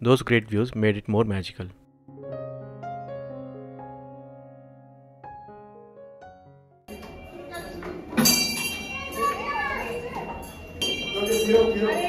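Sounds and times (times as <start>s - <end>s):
prayer wheel bell ringing: 6.9s - 12.0s
prayer wheel turning: 6.9s - 12.0s.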